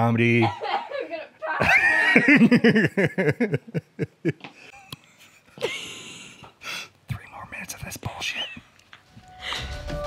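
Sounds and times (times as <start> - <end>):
breathy laughter: 0.4 - 6.5
whispered voices: 7.1 - 8.7.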